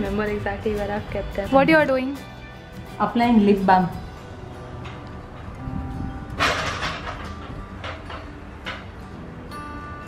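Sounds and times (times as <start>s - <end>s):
soft background music: 0.0s - 10.0s
step ladder clattering: 6.4s - 9.0s.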